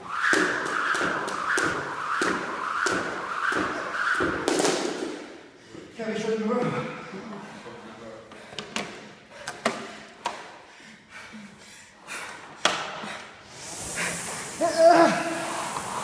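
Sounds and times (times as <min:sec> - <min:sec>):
rowing machine flywheel whoosh: 0:13.4 - 0:16.0
person calling out: 0:14.6 - 0:15.4.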